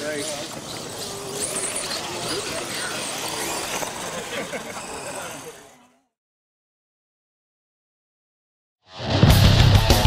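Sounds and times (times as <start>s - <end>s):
people talking and laughing: 0.0s - 6.0s
toy truck running on grass: 0.0s - 6.2s.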